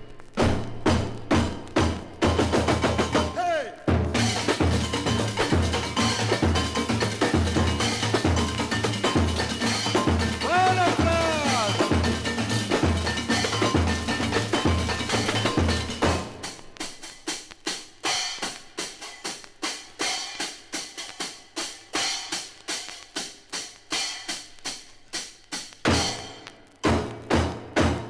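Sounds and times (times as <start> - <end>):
sharp drum strikes: 0.0 - 17.1, 25.9 - 28.0
samba percussion ensemble: 0.4 - 17.3, 25.9 - 28.0.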